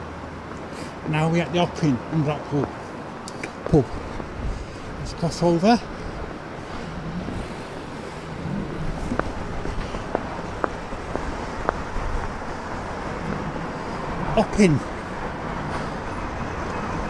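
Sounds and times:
road traffic: 0.0s - 17.0s
wind on microphone: 3.6s - 17.0s.

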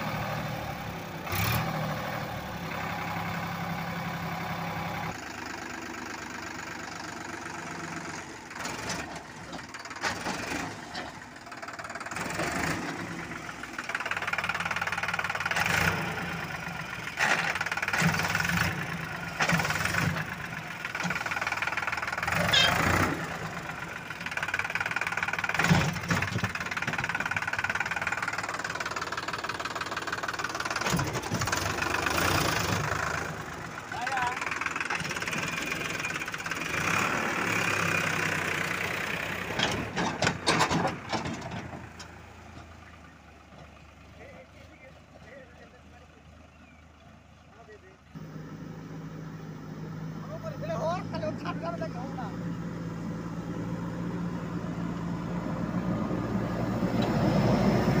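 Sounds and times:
tractor diesel engine revving: 0.0s - 58.0s.

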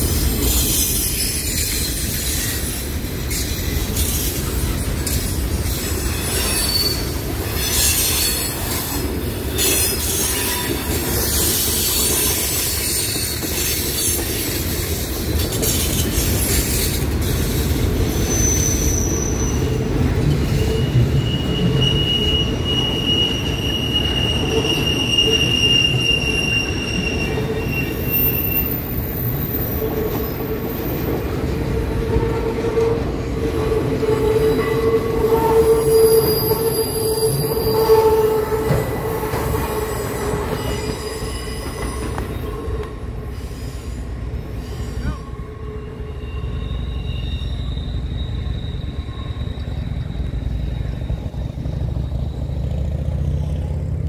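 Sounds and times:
train wheels squealing: 0.0s - 53.8s
freight cars rumbling: 0.0s - 54.0s.

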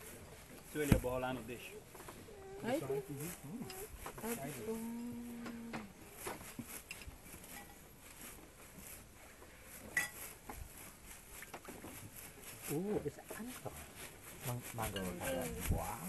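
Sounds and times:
voices at a meal table: 0.5s - 8.3s, 12.6s - 16.0s
clinks of cutlery and dishes: 10.0s - 10.2s.

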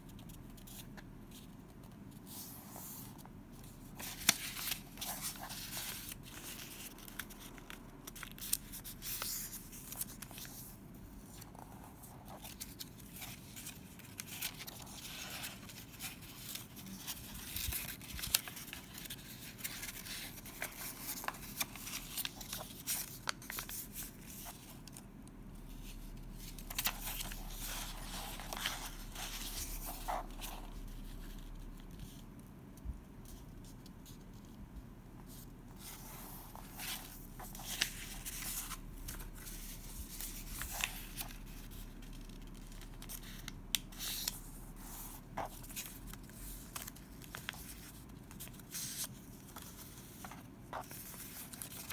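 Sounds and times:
paper being folded and creased: 0.1s - 25.0s, 25.6s - 32.3s, 35.2s - 51.9s.

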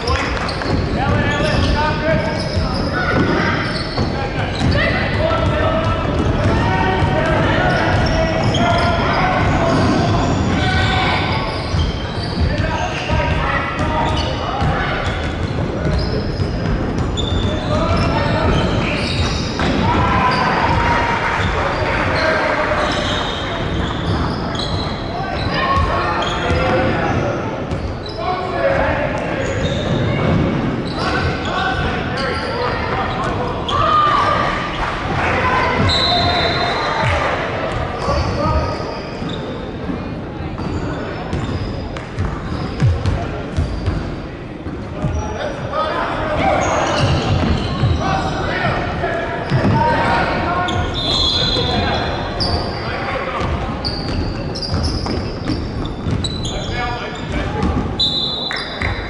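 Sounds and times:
echoing voices: 0.0s - 59.0s.

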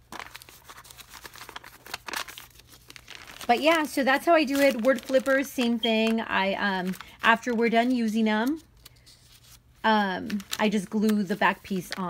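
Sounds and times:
paper rustling and crinkling: 0.0s - 12.0s.

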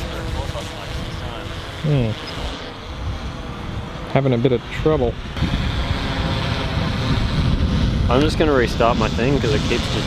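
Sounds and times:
wind buffeting microphone: 2.4s - 10.0s.

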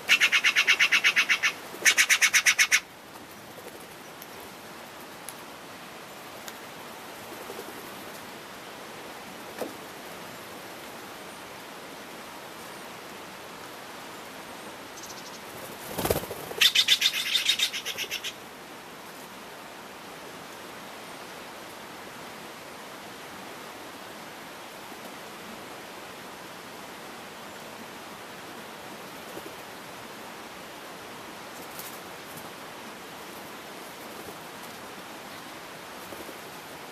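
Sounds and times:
faint steady hiss: 0.0s - 36.9s.

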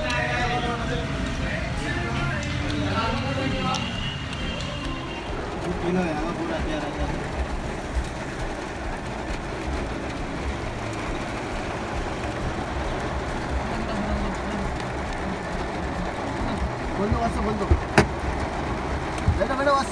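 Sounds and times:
tyres on wet road: 0.0s - 19.9s
vehicle engine rumble from cabin: 0.0s - 19.9s.

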